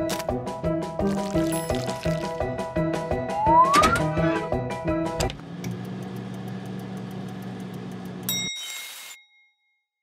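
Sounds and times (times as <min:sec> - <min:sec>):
microwave oven humming: 0:05.0 - 0:08.3
microwave bell ding: 0:08.3 - 0:09.6.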